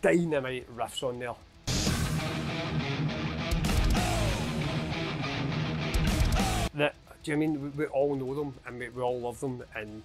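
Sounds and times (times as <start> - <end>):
distorted electric guitar riff: 1.6 - 6.8
heavy metal music: 1.6 - 6.9.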